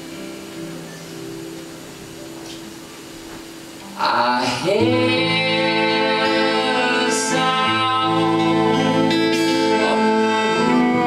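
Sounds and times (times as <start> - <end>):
live band playing held chords: 0.0 - 11.0.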